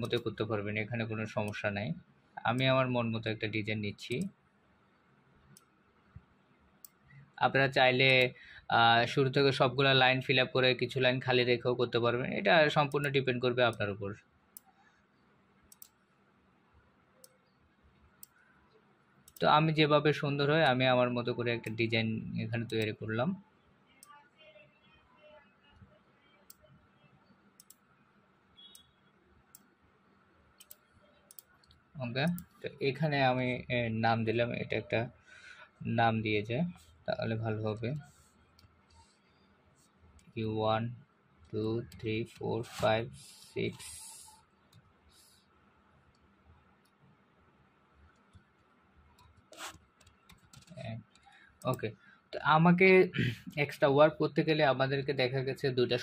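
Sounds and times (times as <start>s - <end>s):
computer mouse clicking: 0.0s - 0.4s, 6.8s - 7.0s, 15.7s - 16.0s, 17.2s - 19.6s, 25.8s - 26.7s, 27.6s - 27.9s, 30.6s - 32.6s, 48.0s - 51.8s.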